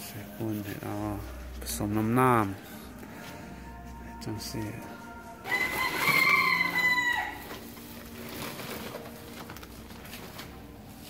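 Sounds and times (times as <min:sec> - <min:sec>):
rooster crowing: 0:05.4 - 0:07.7.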